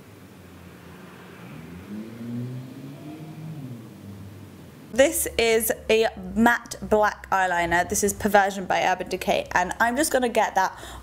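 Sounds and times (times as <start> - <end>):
faint passing vehicle engine: 0.0 - 9.8.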